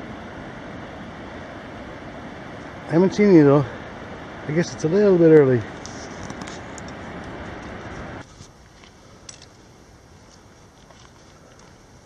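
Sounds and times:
rushing outdoor ambience: 0.0 - 12.0.

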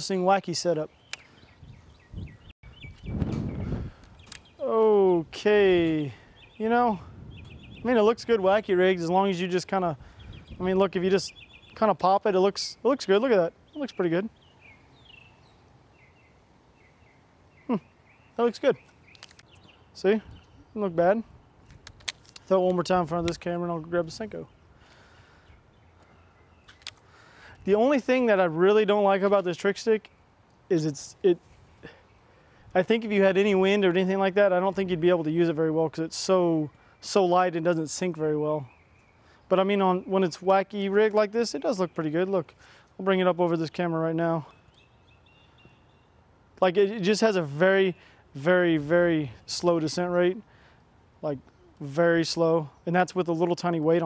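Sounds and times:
faint outdoor background noise: 0.0 - 54.0
sharp click: 1.1 - 1.3, 3.0 - 4.5, 21.6 - 23.5.

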